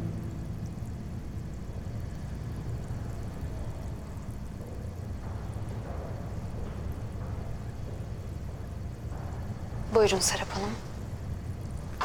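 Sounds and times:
background music: 0:00.0 - 0:01.7
low background rumble: 0:00.0 - 0:12.0.

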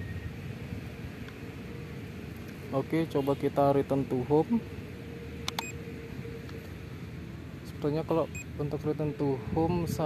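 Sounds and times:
faint steady hum: 0:00.0 - 0:10.0
sharp click: 0:05.4 - 0:05.7
wind on microphone: 0:09.4 - 0:10.0.

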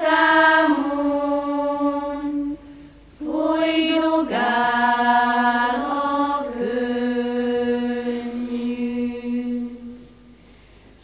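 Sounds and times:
children's choir singing: 0:00.0 - 0:10.1.

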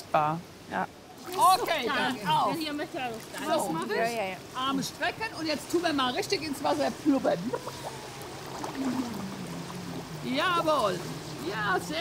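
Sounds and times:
pool water sloshing and splashing: 0:01.0 - 0:12.0.

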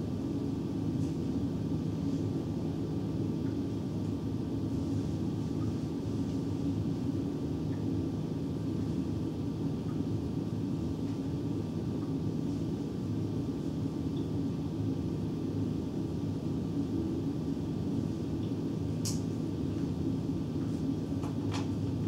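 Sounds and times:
low rumble of room noise: 0:00.0 - 0:22.0.

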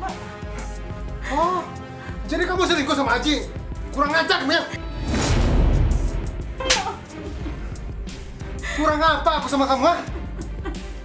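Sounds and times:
dramatic background music: 0:00.0 - 0:11.0
hand slapping face: 0:06.6 - 0:06.9.

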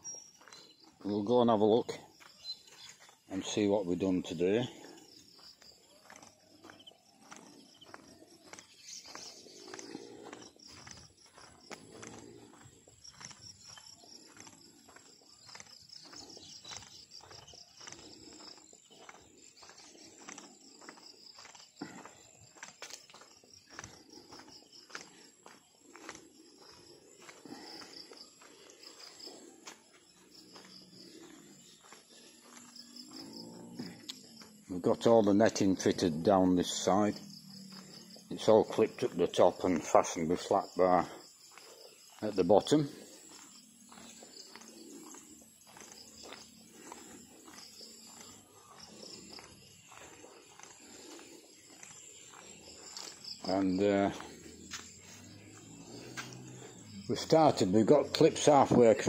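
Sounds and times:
footsteps on concrete: 0:00.0 - 0:59.0
insects chirring: 0:00.0 - 0:59.0.

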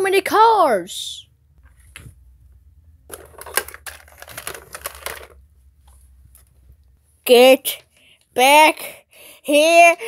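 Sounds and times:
plastic toys clicking and rattling: 0:03.1 - 0:05.4.

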